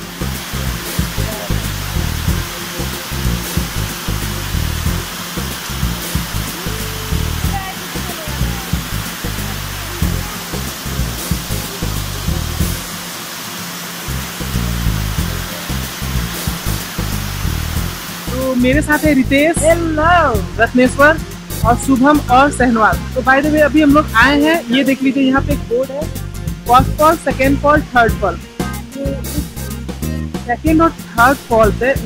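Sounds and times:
waterfall roaring: 0:00.0 - 0:29.9.

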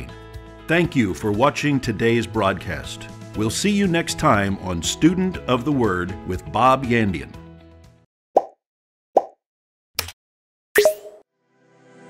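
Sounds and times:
pop sound effects: 0:08.4 - 0:08.6, 0:09.2 - 0:09.4, 0:10.8 - 0:11.2.

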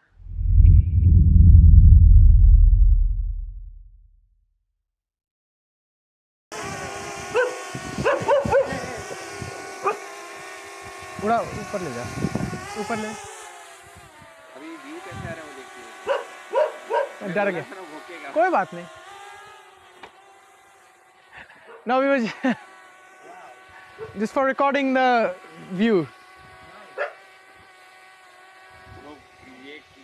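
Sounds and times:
drone propellers buzzing: 0:00.0 - 0:03.9, 0:06.6 - 0:30.0
brief low sound: 0:00.2 - 0:04.1
small motor whine: 0:06.5 - 0:30.0
dog bark: 0:07.3 - 0:08.8, 0:16.1 - 0:17.2, 0:21.6 - 0:21.9, 0:23.9 - 0:24.2, 0:27.0 - 0:27.2.

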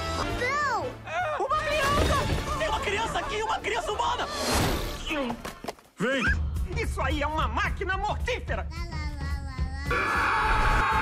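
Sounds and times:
film score music: 0:00.0 - 0:11.0
loud sustained screaming: 0:09.9 - 0:11.0.

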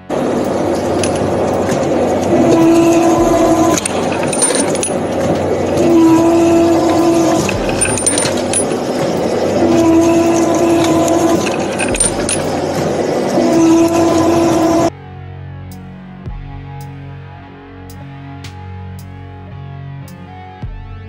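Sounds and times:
roller machine humming: 0:00.0 - 0:14.9
metallic clicks: 0:00.1 - 0:14.9.

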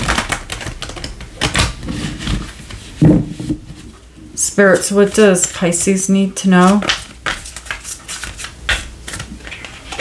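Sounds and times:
cards being riffle-shuffled: 0:00.0 - 0:03.0, 0:06.6 - 0:10.0.

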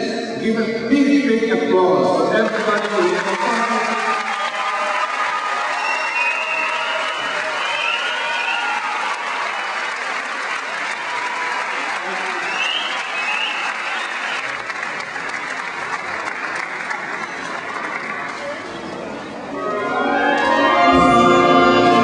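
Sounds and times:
audience applause: 0:02.4 - 0:19.3.

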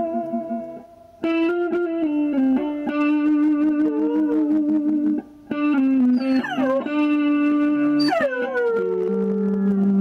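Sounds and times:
electric guitar sustained notes: 0:00.0 - 0:10.0
dog howling: 0:06.1 - 0:07.1, 0:08.0 - 0:09.3.

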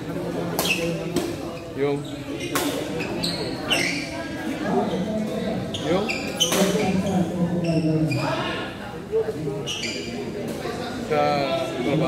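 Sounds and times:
shoes squeaking on court floor: 0:00.6 - 0:08.4, 0:09.6 - 0:10.6.

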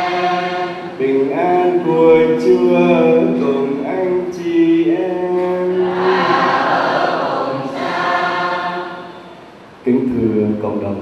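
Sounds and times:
person chanting: 0:00.0 - 0:06.7
choir singing: 0:00.0 - 0:09.4.

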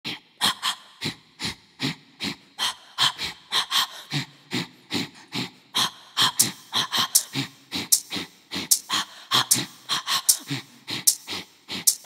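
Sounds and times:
rhythmic panted vocal breaths: 0:00.0 - 0:12.0.

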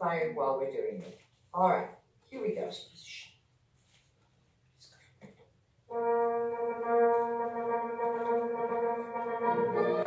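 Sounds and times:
long held music chord: 0:05.9 - 0:10.0.

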